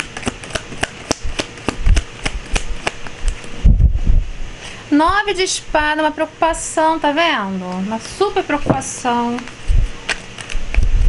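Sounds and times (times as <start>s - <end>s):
cards being shuffled: 0.0s - 3.6s, 7.7s - 11.0s
wind rumble on microphone: 3.6s - 4.5s, 9.7s - 9.9s, 10.8s - 11.0s.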